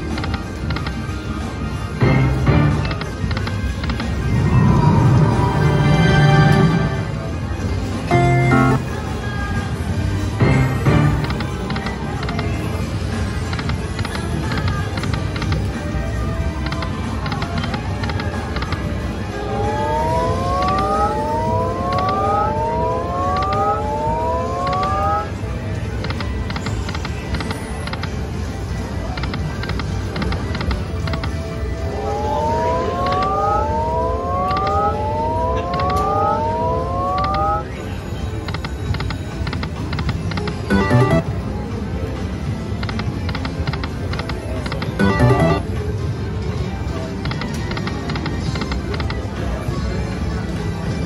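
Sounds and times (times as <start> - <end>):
steady background sound: 0.0 - 9.1, 38.5 - 41.7, 43.4 - 45.9
rising electronic tones: 3.8 - 7.2, 8.1 - 8.9, 40.7 - 41.4, 45.0 - 45.7
slot machine electronic ticks: 8.1 - 8.9, 10.4 - 12.6, 20.0 - 25.3, 29.2 - 31.4, 32.0 - 37.7, 38.4 - 41.4, 42.8 - 45.8.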